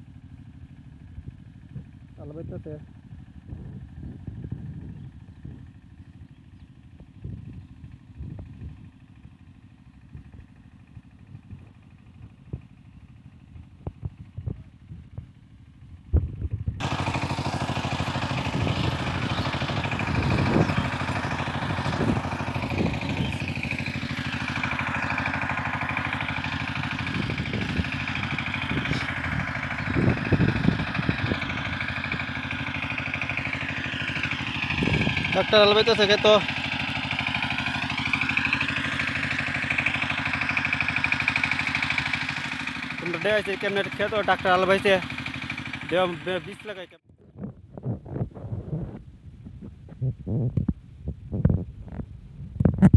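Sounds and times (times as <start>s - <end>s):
tiller engine running: 0.0s - 52.9s.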